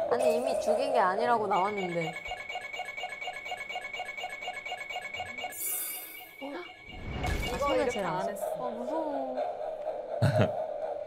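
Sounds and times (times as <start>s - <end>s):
rapid electronic beeping: 0.2s - 8.7s
steady high electronic tone: 1.4s - 8.6s.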